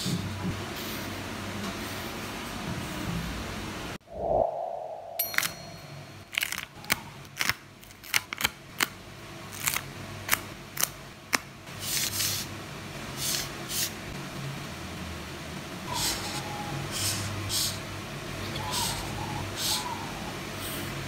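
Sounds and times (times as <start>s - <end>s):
short falling tone: 4.1s - 6.3s.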